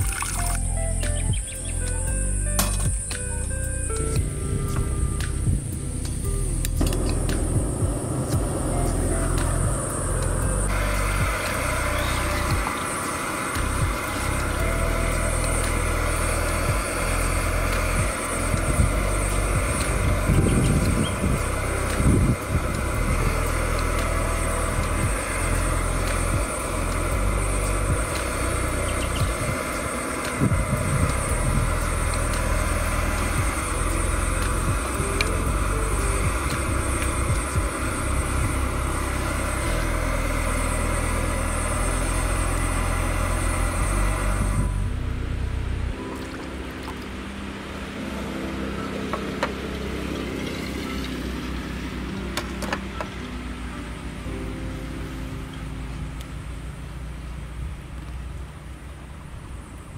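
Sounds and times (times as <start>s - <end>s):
water boiling in a saucepan: 0.0s - 0.7s, 10.7s - 44.8s.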